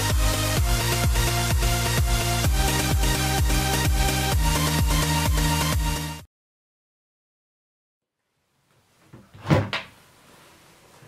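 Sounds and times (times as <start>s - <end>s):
room tone: 8.0s - 11.0s
door shutting with thud: 9.1s - 10.0s.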